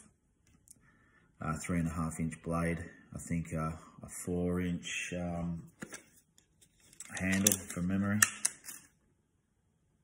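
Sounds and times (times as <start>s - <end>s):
person speaking: 1.4s - 6.0s, 6.9s - 8.6s.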